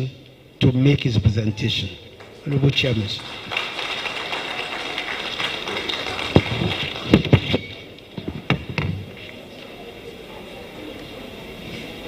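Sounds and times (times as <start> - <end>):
audience applauding: 2.2 - 7.4.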